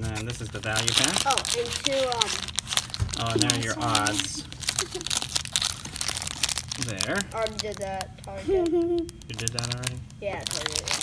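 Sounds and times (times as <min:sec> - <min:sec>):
plastic wrap crinkling: 0:00.0 - 0:11.0.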